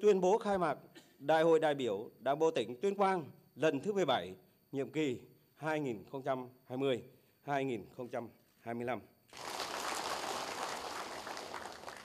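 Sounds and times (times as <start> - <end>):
audience applauding: 9.4 - 12.0.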